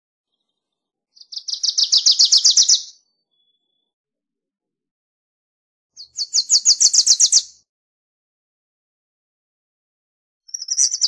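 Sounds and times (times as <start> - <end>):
warbler singing high chipping notes: 1.2 - 3.9, 6.0 - 7.6, 10.5 - 11.0.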